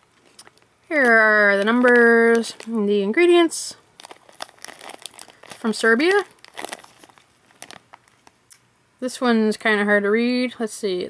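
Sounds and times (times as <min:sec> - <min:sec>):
plastic wrapper crinkling: 0:00.2 - 0:08.6.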